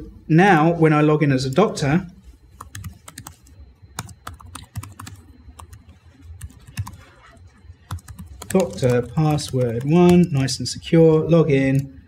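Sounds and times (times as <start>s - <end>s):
typing on a keyboard: 2.6s - 7.0s, 7.8s - 10.4s.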